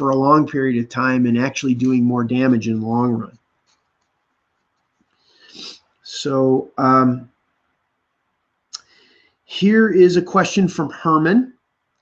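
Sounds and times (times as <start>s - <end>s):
man's intake of breath: 5.2s - 5.9s.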